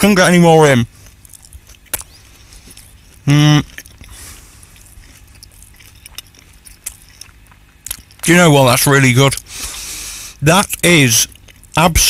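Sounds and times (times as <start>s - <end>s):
chewing mouth noises: 0.9s - 8.4s, 9.2s - 9.8s, 11.2s - 12.0s.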